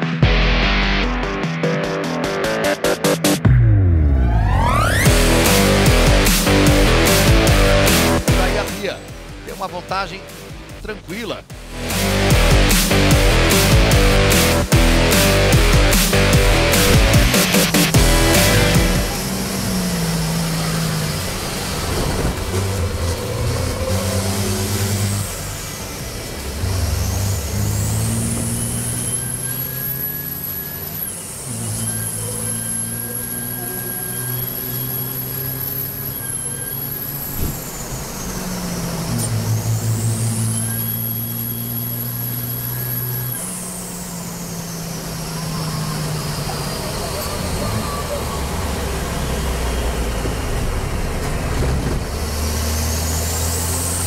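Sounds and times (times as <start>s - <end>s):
diesel truck engine revving: 0.0s - 54.0s
high turbo whistle: 23.2s - 50.2s.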